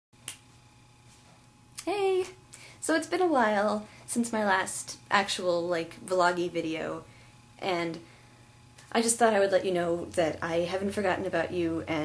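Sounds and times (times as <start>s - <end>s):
faint room hum: 0.2s - 12.0s
woman's voice: 1.8s - 8.1s, 8.9s - 12.0s.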